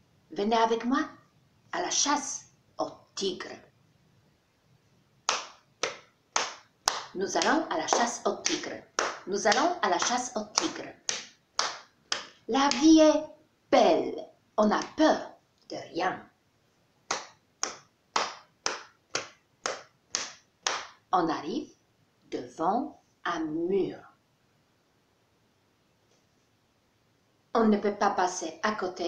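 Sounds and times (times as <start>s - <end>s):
hand claps in a steady beat: 5.3s - 12.9s, 17.1s - 21.0s.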